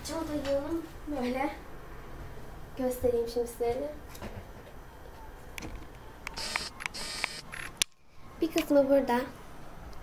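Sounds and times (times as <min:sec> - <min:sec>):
sharp camera clicks: 0:06.3 - 0:08.0.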